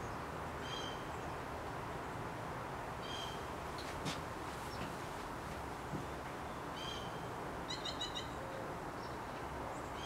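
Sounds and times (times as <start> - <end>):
small birds calling: 0.0 - 1.4, 3.0 - 3.6, 5.8 - 10.0.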